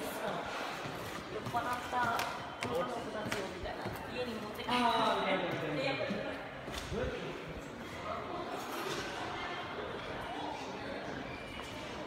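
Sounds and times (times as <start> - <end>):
footsteps on tiled floor: 0.2 - 4.6.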